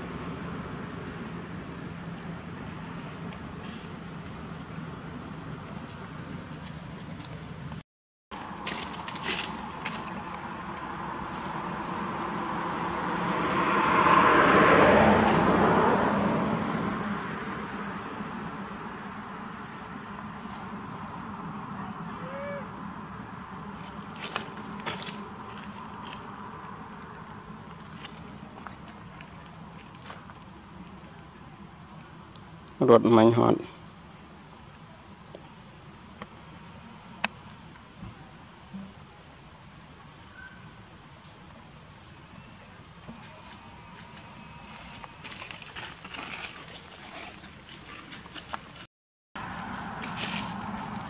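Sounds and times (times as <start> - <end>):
high insect buzz: 8.4 - 48.0
motor vehicle passing: 8.5 - 28.2, 49.4 - 51.0.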